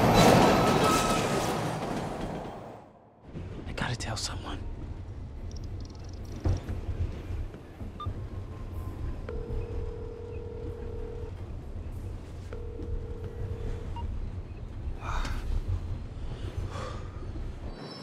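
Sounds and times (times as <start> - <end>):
low steady rumble: 6.8 - 17.6.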